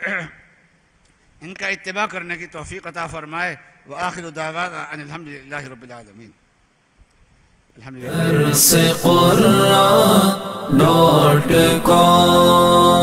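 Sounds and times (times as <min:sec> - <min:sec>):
unaccompanied vocal chant: 0:08.0 - 0:13.0.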